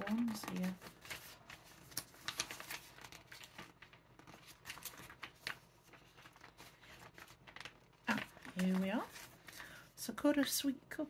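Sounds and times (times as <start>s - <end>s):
snack packets rustling: 0.0s - 9.8s.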